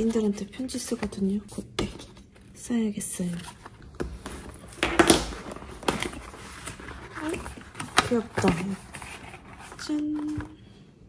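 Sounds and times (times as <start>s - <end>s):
paper rustling: 3.1s - 10.7s.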